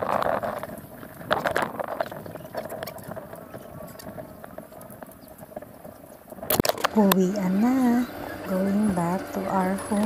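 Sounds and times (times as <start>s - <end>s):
faint voices: 6.5s - 10.0s.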